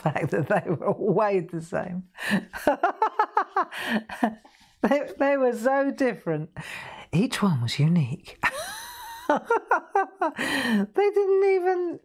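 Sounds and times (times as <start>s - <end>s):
woman laughing: 2.2s - 4.4s, 8.4s - 10.8s.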